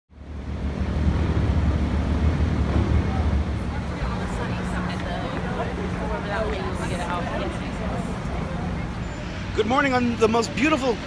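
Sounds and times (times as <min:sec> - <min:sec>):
traffic with low rumble: 0:00.1 - 0:11.0.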